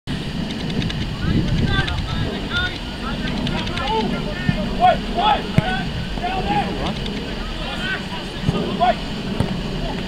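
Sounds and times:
low rumble: 0:00.1 - 0:10.0
footballers shouting: 0:01.1 - 0:10.0.

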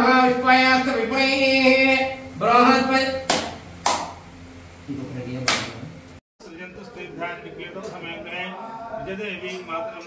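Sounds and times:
sharp taps with echo: 0:03.3 - 0:04.2.

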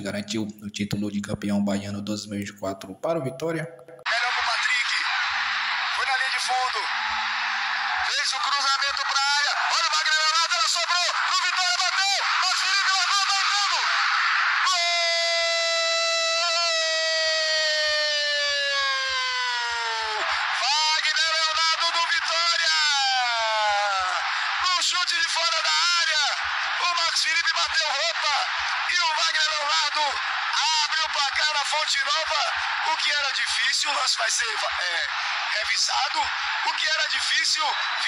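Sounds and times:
radio commentator excited speech: 0:04.0 - 0:05.2, 0:05.9 - 0:06.9, 0:08.0 - 0:16.9, 0:20.2 - 0:38.0
stadium crowd noise: 0:04.0 - 0:38.0
long held cry: 0:11.4 - 0:21.0.

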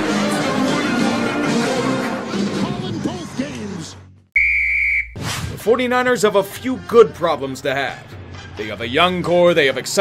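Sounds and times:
high whistle blast: 0:04.4 - 0:05.2.

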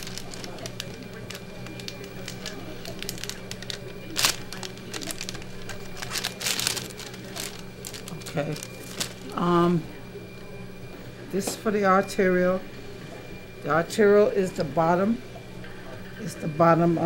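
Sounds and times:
paper and plastic packs crinkling: 0:00.0 - 0:09.4
sharp crackle: 0:00.0 - 0:09.4
steady low hum: 0:00.0 - 0:17.0.

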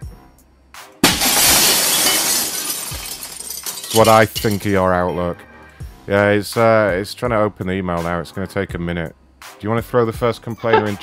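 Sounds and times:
glass smashing: 0:01.0 - 0:04.8.

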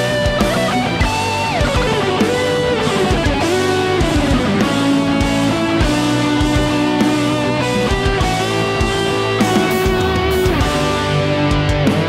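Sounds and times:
electric guitar lead line: 0:00.0 - 0:12.0.

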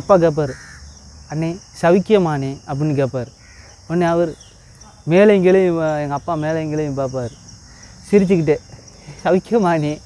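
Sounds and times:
man talking: 0:00.0 - 0:00.6, 0:01.3 - 0:03.3, 0:03.9 - 0:07.4, 0:08.0 - 0:10.0
insects droning: 0:00.0 - 0:10.0.

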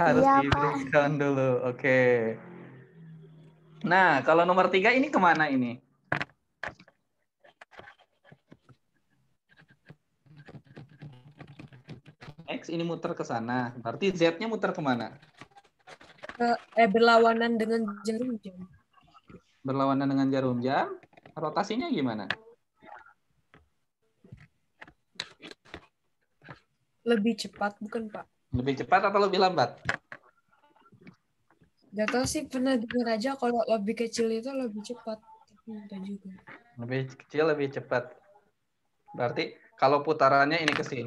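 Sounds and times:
computer mouse clicks and taps: 0:09.5 - 0:12.4.

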